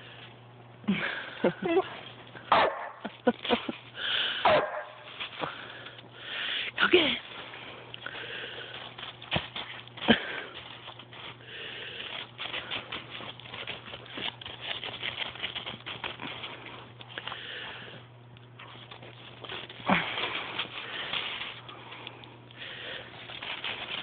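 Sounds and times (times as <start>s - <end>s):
paws crunching in snow: 1.0s - 24.0s
dog sniffing snow: 7.3s - 24.0s.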